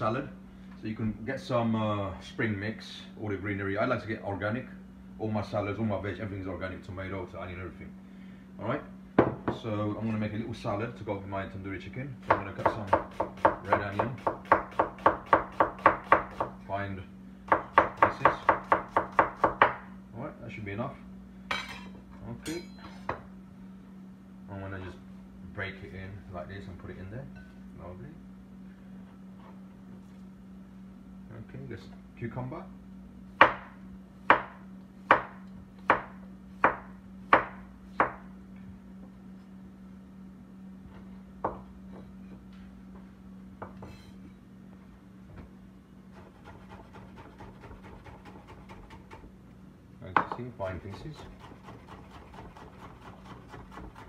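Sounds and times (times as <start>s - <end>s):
faint steady hum: 0.0s - 54.0s
knife chopping onion on board: 12.2s - 16.6s, 17.5s - 19.8s, 33.4s - 38.3s, 46.1s - 49.3s, 50.2s - 54.0s
short metallic ring: 21.5s - 23.0s
knife scraping on board: 46.2s - 49.0s.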